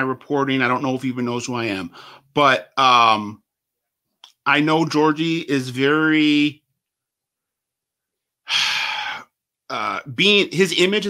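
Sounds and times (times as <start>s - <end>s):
man inhaling: 1.9s - 2.3s, 8.4s - 9.4s.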